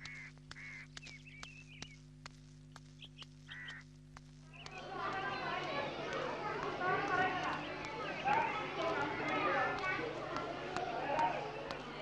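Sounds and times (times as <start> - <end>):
birds calling: 0.0 - 12.0
faint regular clicks: 0.0 - 12.0
steady low hum: 0.0 - 12.0
warbling bird chirps: 2.8 - 3.9.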